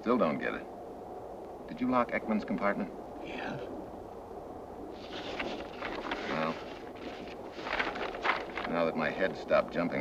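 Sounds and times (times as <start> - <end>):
man speaking: 8.7 - 10.0.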